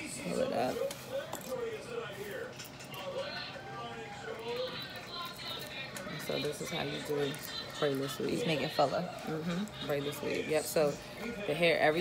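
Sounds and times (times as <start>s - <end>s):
indistinct voices talking quietly: 0.0s - 12.0s.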